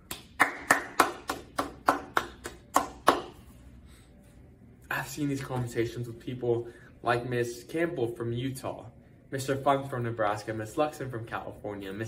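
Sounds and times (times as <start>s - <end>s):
person clapping hands: 0.0s - 3.4s.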